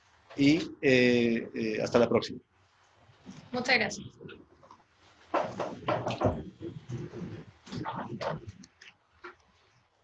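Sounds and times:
objects knocking on table: 5.3s - 8.5s.

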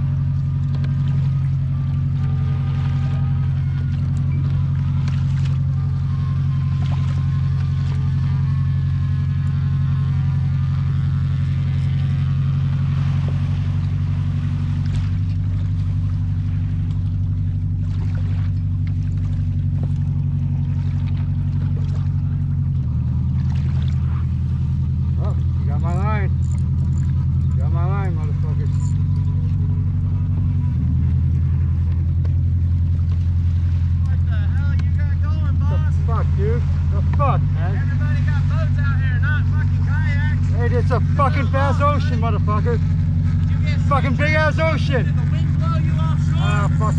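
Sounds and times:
boat engine droning: 0.0s - 46.9s.

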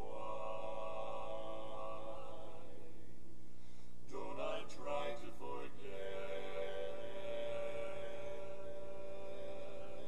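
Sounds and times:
men singing a cappella chord: 0.0s - 3.1s, 4.1s - 10.0s.

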